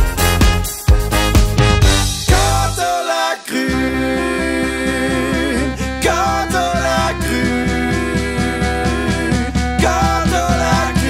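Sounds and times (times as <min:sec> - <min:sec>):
pulsing bass line: 0:00.0 - 0:02.8, 0:03.7 - 0:11.0
folk-pop band playing: 0:00.0 - 0:11.0.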